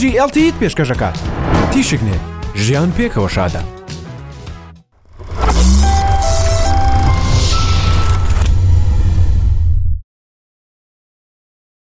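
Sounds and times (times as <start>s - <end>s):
deep rumble: 1.0s - 2.4s
hissing whooshes: 1.1s - 2.2s.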